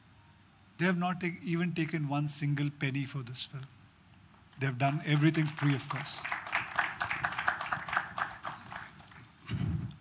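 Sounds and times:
audience clapping: 4.7s - 9.4s.

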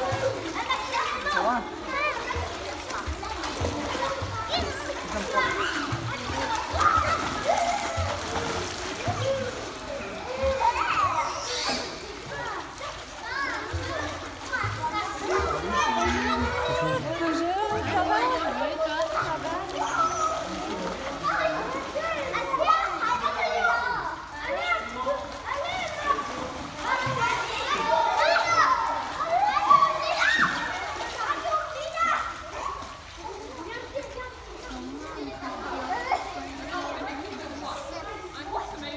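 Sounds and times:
children calling and chattering: 0.0s - 38.9s
water splashing: 0.0s - 38.9s.

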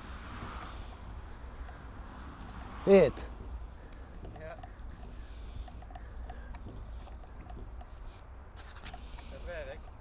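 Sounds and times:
hoses and plastic rustling: 0.0s - 10.0s.

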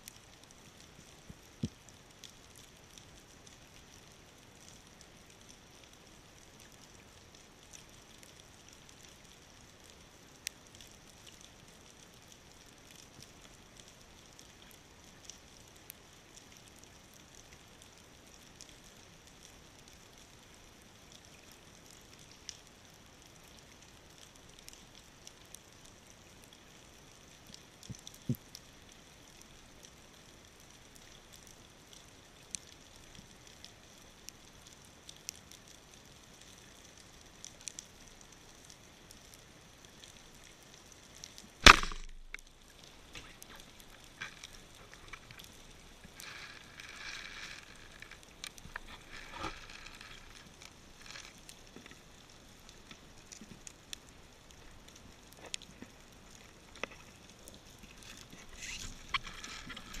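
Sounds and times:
clicks and crackles underwater: 0.0s - 60.0s
faint underwater hiss: 26.1s - 60.0s
speargun firing underwater: 41.6s - 42.4s.

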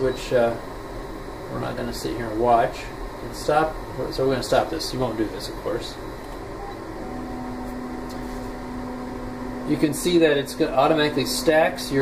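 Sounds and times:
mechanical hum of lab instrument: 0.0s - 12.0s
low steady tone: 6.5s - 11.7s.

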